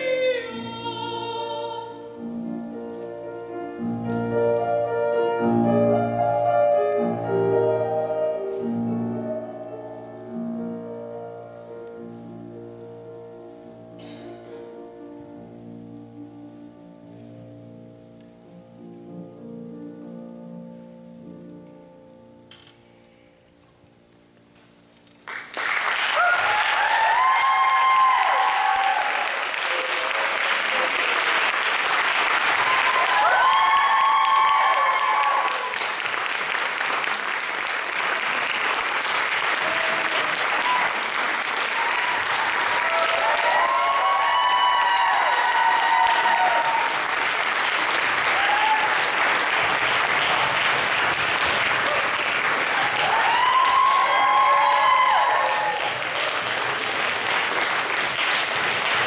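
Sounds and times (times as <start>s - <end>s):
audience applauding: 25.2s - 59.0s
shouted cheers: 26.1s - 30.8s, 32.5s - 35.8s, 39.5s - 47.1s, 48.2s - 49.2s, 51.8s - 56.3s.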